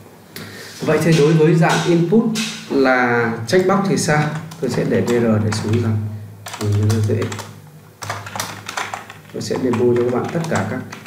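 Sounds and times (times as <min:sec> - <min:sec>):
computer keyboard key clicks: 0:04.2 - 0:11.0.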